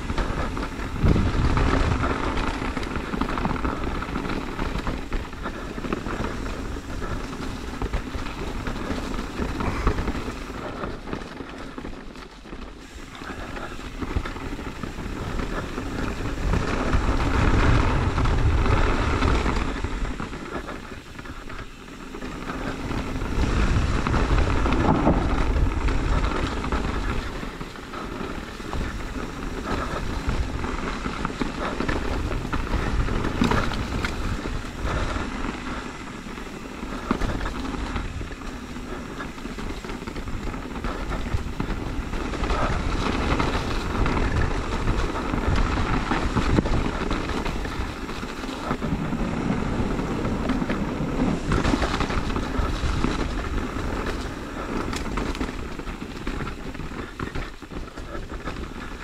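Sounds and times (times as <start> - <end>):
bike tyres on dirt trail: 0.0 - 59.0
wind noise on microphone: 0.0 - 59.0.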